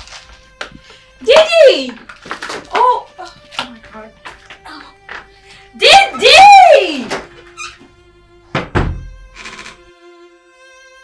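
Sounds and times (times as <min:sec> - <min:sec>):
soft background music: 0:00.0 - 0:11.0
heavy thud with low boom: 0:08.5 - 0:09.1.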